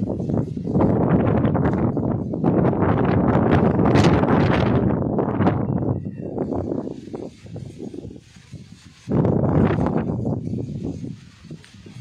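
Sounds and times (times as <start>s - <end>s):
gusty wind buffeting microphone: 0.0s - 12.0s.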